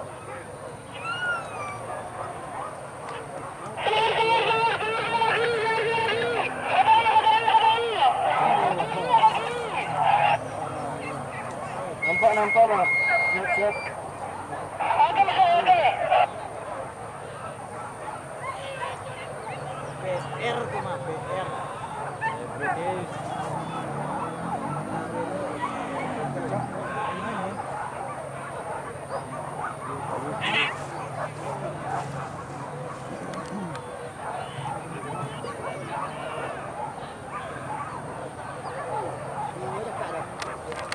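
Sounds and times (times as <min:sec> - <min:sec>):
men shouting calls to dogs: 0:00.1 - 0:40.9.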